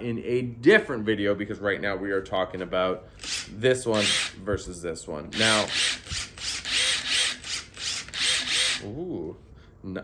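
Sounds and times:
impact driver whirring bursts: 0:05.4 - 0:08.8.

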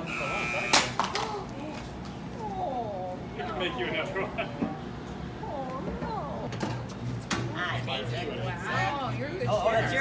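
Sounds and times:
voices chatting: 0:00.0 - 0:06.6.

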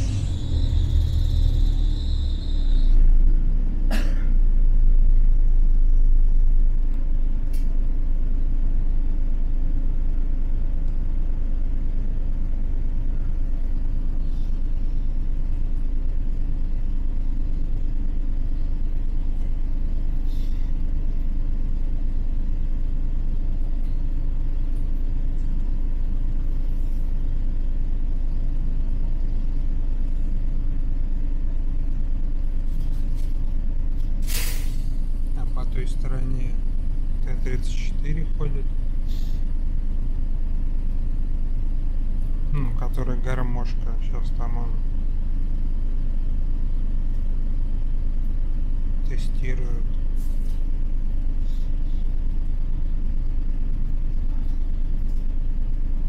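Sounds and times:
air brakes hissing: 0:00.0 - 0:03.1, 0:20.1 - 0:20.8, 0:34.2 - 0:35.2, 0:39.0 - 0:39.6
bus diesel engine rumbling: 0:00.0 - 0:56.0.

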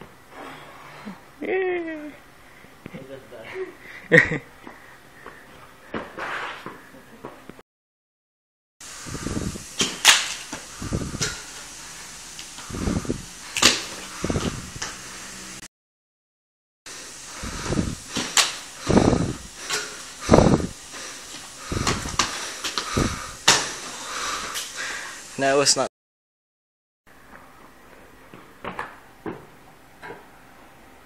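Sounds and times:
sneakers thudding and scuffing on tiles: 0:04.6 - 0:07.6, 0:21.3 - 0:23.8, 0:27.3 - 0:30.3.

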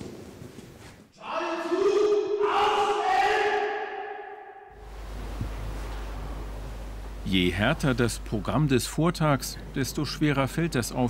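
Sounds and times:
man shouting long call: 0:01.2 - 0:04.7
steady low hum: 0:04.7 - 0:11.0.

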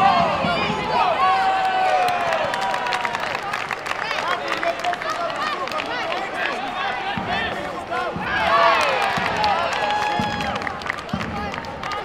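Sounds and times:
crowd calling and shouting: 0:00.0 - 0:12.0.

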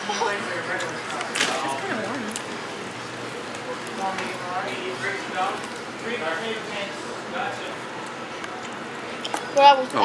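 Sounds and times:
restaurant background noise: 0:00.0 - 0:10.0.

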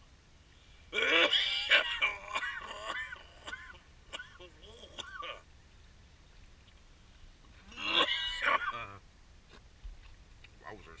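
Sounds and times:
gulls calling: 0:07.6 - 0:09.1.

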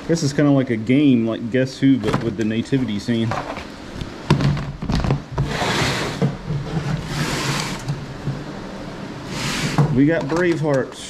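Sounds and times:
low mechanical hum: 0:00.0 - 0:11.0
plastic lid rustling and scraping: 0:03.3 - 0:03.7, 0:04.3 - 0:08.4.

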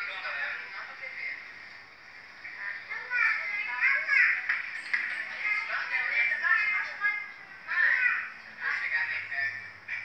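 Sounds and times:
young children's voices: 0:02.8 - 0:04.5.

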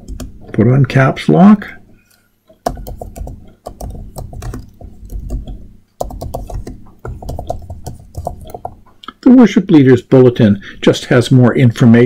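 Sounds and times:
computer keyboard typing: 0:02.6 - 0:08.8.

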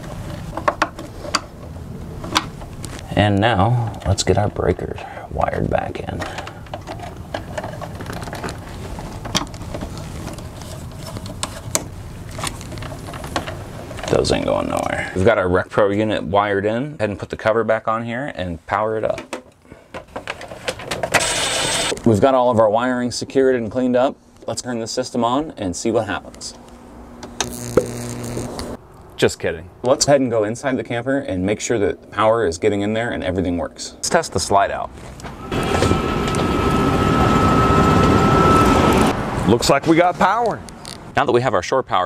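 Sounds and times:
electrical buzz with hiss: 0:27.3 - 0:28.8.

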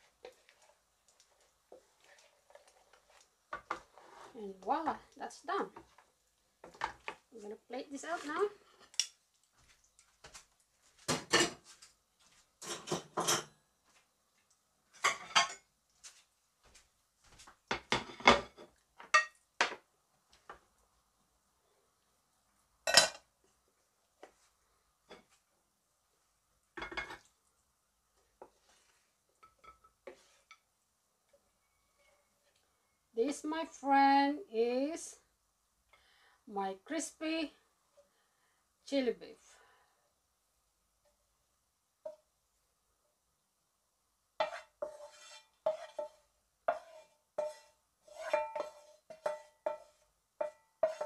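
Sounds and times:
pan and plates clinking: 0:12.6 - 0:13.6, 0:46.7 - 0:51.0.

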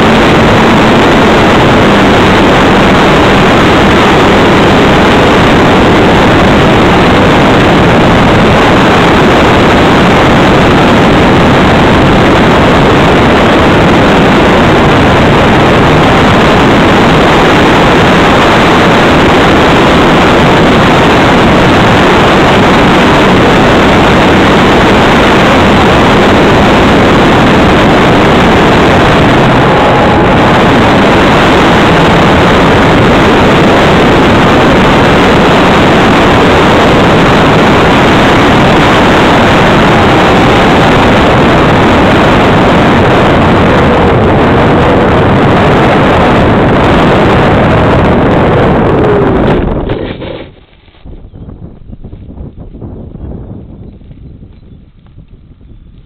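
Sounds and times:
wind rush over microphone: 0:00.0 - 0:56.0.

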